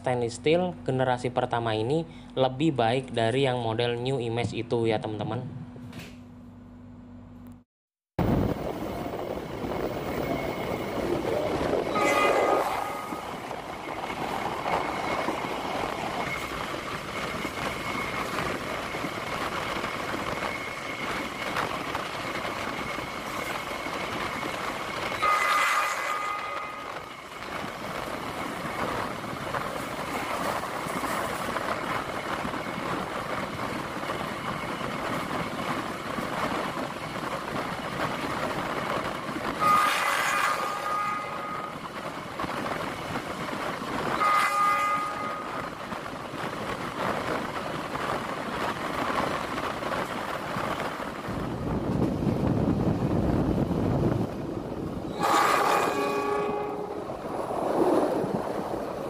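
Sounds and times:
train running at speed: 8.2s - 59.0s
train horn: 11.9s - 13.3s, 25.2s - 27.0s, 39.6s - 41.8s, 44.1s - 45.7s, 55.1s - 57.1s.

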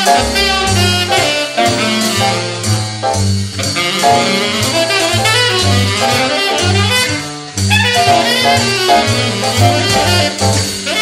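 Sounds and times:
jazz ensemble with saxophone: 0.0s - 11.0s.

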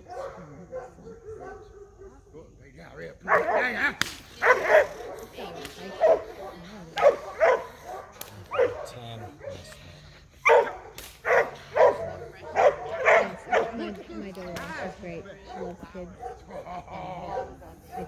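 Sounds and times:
dog barking: 0.0s - 2.2s, 3.2s - 3.8s, 4.4s - 9.8s, 10.4s - 13.9s, 15.4s - 18.0s
sharp cracks: 3.9s - 4.5s, 8.1s - 8.6s, 10.9s - 11.5s.

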